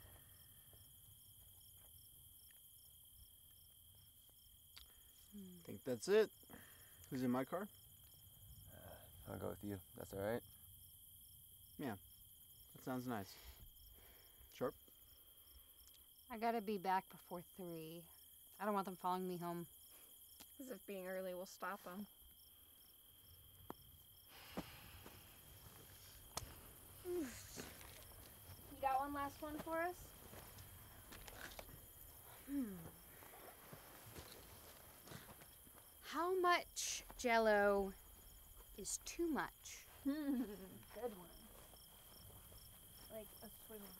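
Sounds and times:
crickets chirping: 0.0s - 43.9s
footsteps on grass: 24.4s - 32.2s, 32.9s - 36.0s, 40.8s - 43.9s
person humming hmm: 32.4s - 33.0s.

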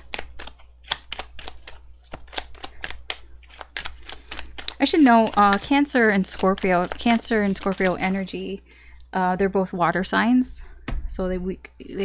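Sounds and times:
cards being shuffled: 0.0s - 8.6s
low steady hum: 0.0s - 12.0s.

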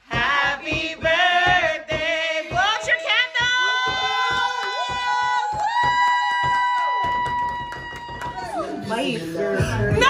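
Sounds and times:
people clapping: 0.2s - 9.2s
person whooping cheer: 2.8s - 8.9s.

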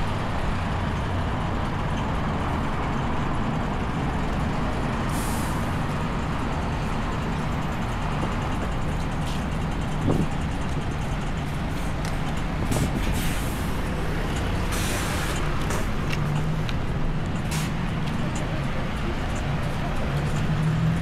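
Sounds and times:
city street traffic: 0.0s - 21.0s
truck engine idling: 0.0s - 21.0s.

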